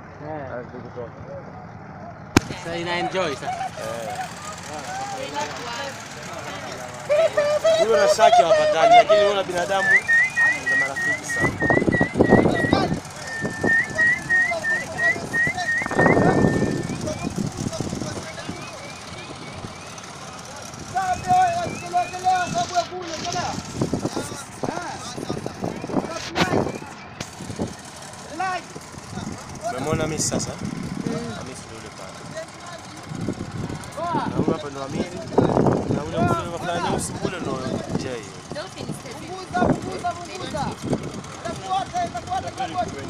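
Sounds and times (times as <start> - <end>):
distant voices chatting: 0.0 - 43.0.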